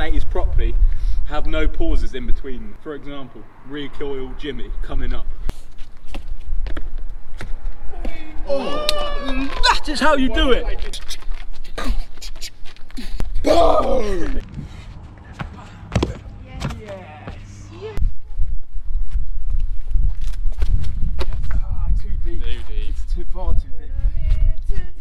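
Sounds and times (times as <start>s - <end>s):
man shouting: 7.9s - 10.8s, 13.4s - 14.4s.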